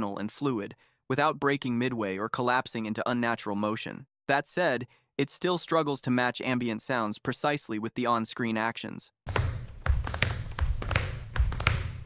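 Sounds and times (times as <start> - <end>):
feet tapping on stage floor: 9.3 - 12.0.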